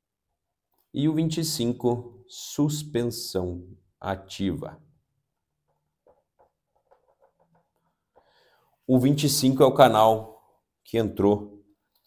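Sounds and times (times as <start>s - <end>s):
marker squeaking on whiteboard: 5.4s - 8.4s.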